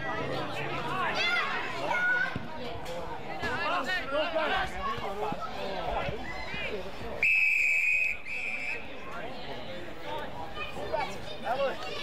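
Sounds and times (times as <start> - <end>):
umpire's whistle blasts: 7.2 - 8.8.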